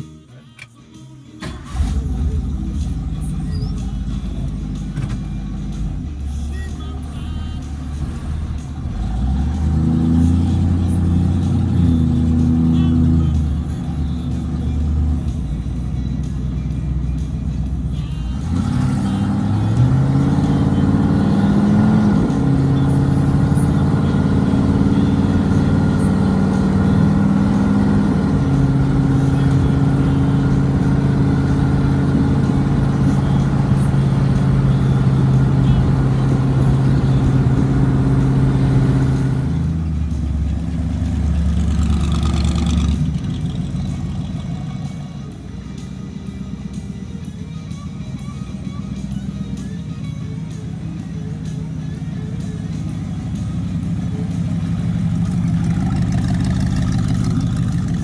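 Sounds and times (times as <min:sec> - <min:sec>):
truck engine accelerating: 0:01.3 - 0:58.0.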